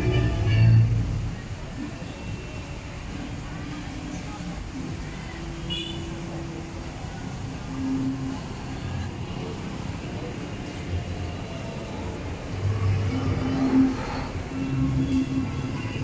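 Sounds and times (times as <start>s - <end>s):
road vehicles passing: 0.0s - 16.0s.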